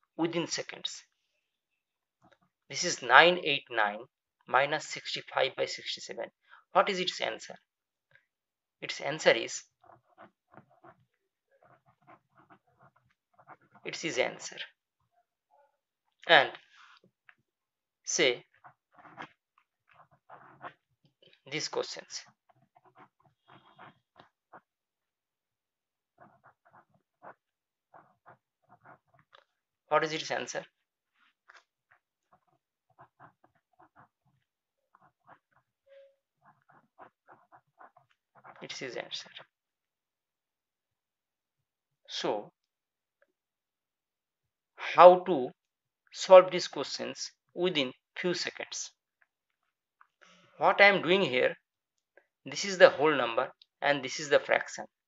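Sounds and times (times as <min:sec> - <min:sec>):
ballpoint pen writing on paper: 0:09.6 - 0:14.7, 0:18.4 - 0:25.2, 0:26.0 - 0:39.5
person's voice: 0:13.9 - 0:14.8, 0:16.2 - 0:16.7, 0:18.1 - 0:18.6, 0:21.4 - 0:22.4, 0:29.9 - 0:30.7, 0:38.6 - 0:39.4, 0:52.5 - 0:55.0.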